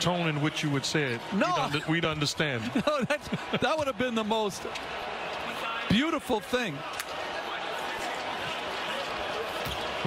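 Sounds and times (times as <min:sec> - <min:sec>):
basketball arena background noise: 0:00.0 - 0:10.0.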